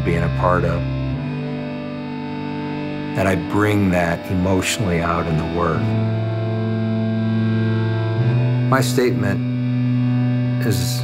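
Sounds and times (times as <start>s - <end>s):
guitar through effects: 0.0s - 11.0s.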